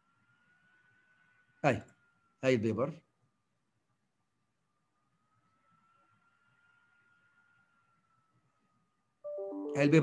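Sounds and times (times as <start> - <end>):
faint high steady tone: 7.6 - 10.0.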